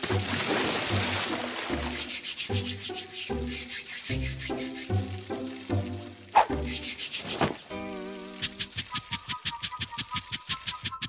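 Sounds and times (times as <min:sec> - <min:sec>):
repeating background music notes: 0:01.0 - 0:11.0
cartoon rubbing sound effect: 0:02.0 - 0:05.0, 0:06.4 - 0:11.0.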